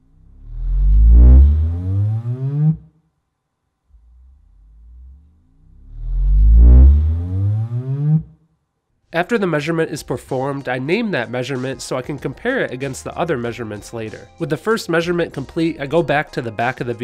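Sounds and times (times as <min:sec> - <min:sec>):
low rising sine sweep: 0:00.0 - 0:02.9, 0:03.9 - 0:08.4.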